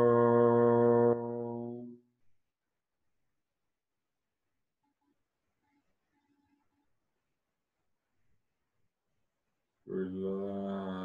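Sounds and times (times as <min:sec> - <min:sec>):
man chanting a steady tone: 0:00.0 - 0:02.0, 0:09.8 - 0:11.0.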